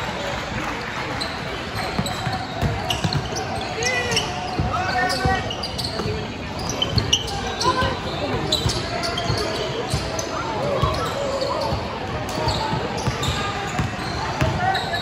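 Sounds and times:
indistinct shouts and chatter: 0.0s - 15.0s.

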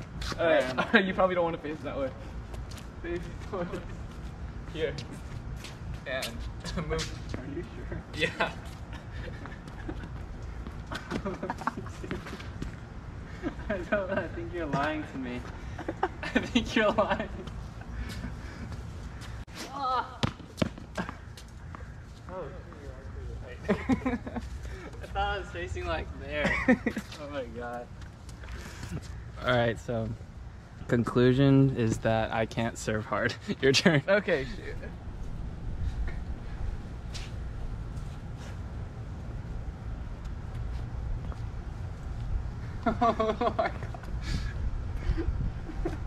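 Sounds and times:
person exclaiming: 19.7s - 20.3s
ball bouncing on hard court: 20.2s - 21.0s.

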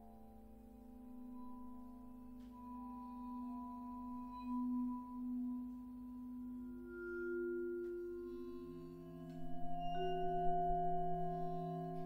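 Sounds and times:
low metallic ringing tone: 0.9s - 12.0s.

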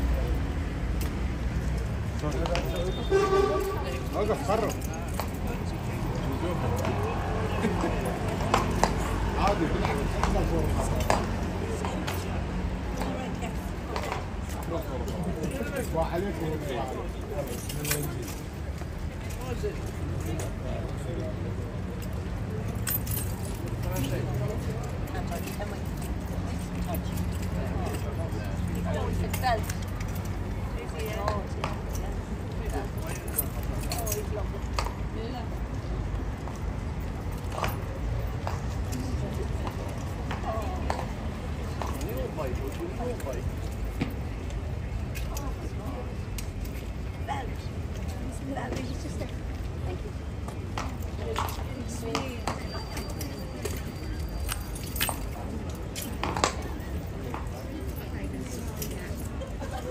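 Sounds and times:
murmur of voices: 0.0s - 59.9s
people talking: 2.2s - 18.4s, 19.2s - 35.6s, 38.9s - 46.4s, 47.1s - 59.9s
horse bridle clicks and clinks: 17.4s - 18.6s, 22.0s - 34.9s, 50.8s - 59.8s.

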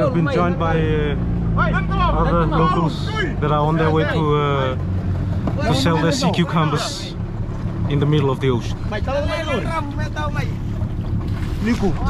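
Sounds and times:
steady low rumble: 0.0s - 12.0s
voices: 0.0s - 12.0s.

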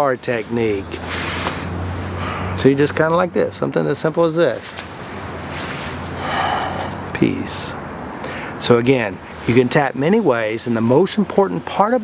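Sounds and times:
man breathing out through mouth: 1.1s - 2.6s, 6.2s - 7.1s.

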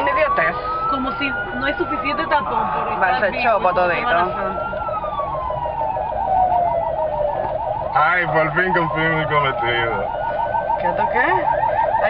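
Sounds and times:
siren wailing: 0.0s - 12.0s
siren yelping: 0.0s - 12.0s.

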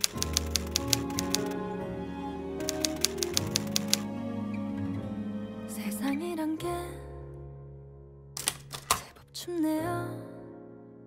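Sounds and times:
typewriter key clicks: 0.0s - 1.5s, 8.4s - 9.1s
slow music with sustained chords: 0.0s - 8.6s.

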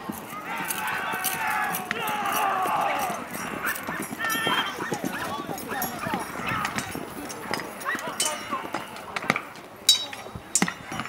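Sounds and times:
men shouting: 0.4s - 6.9s
ringing metal clash: 5.6s - 8.8s, 9.9s - 11.0s.

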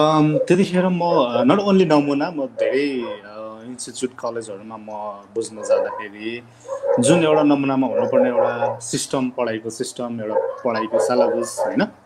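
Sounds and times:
man talking over video call: 0.0s - 12.0s.

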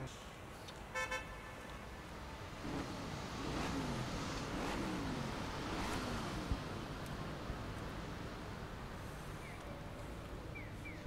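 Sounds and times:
street traffic noise: 0.0s - 11.0s
car horn toot: 0.9s - 1.6s.

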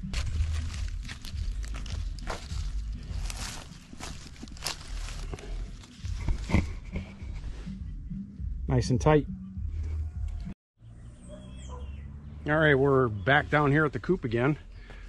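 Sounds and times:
dry leaves crackling: 0.0s - 6.6s
plastic mesh rustling: 0.1s - 6.6s.

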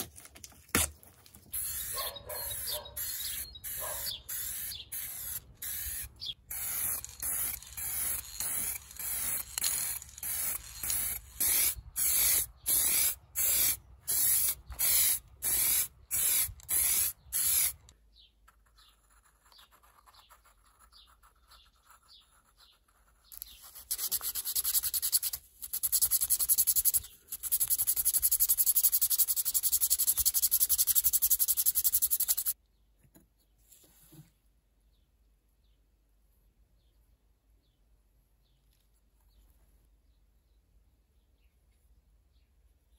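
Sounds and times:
spray paint can hissing: 1.5s - 17.9s, 23.4s - 32.6s.

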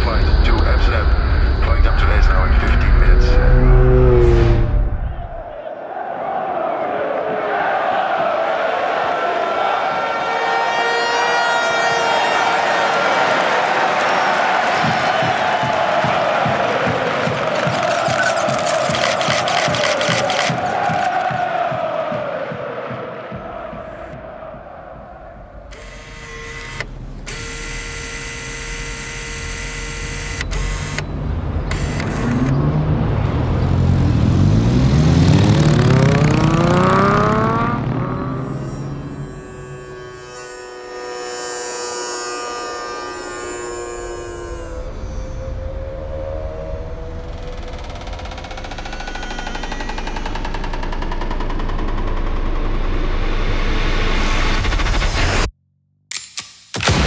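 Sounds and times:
low rumble: 0.0s - 5.5s
rising pitch glides: 2.4s - 5.5s, 30.4s - 51.5s
held tones: 36.0s - 45.8s.

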